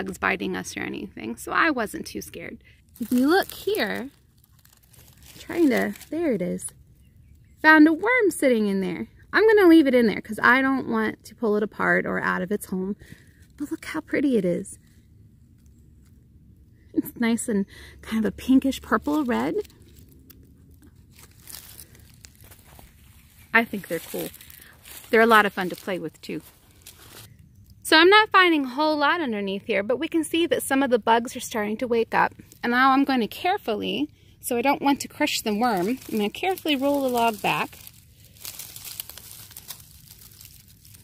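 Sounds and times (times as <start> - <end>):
rustling and crackling handling noise: 2.8 - 7.6, 18.4 - 27.8, 32.1 - 34.0, 34.6 - 41.0.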